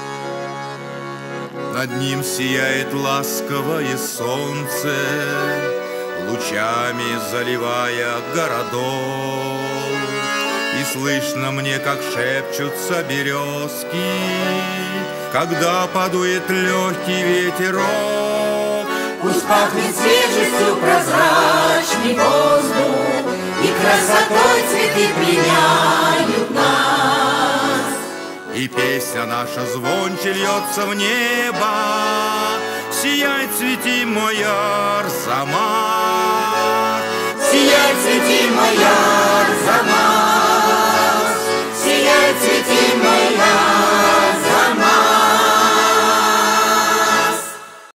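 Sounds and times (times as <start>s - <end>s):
accordion: 0.0s - 48.0s
choir singing in harmony: 2.0s - 15.0s, 15.7s - 29.0s, 34.4s - 47.9s
women's choir singing: 19.2s - 28.3s, 37.4s - 47.8s.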